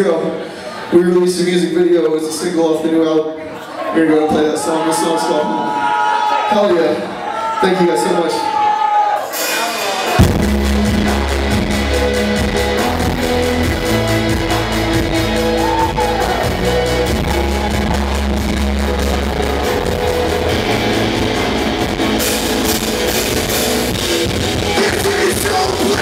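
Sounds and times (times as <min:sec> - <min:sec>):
cymbals: 0:09.2 - 0:26.0
drum kit: 0:09.2 - 0:26.0
electric guitars: 0:10.0 - 0:26.0
bass guitar: 0:10.2 - 0:26.0.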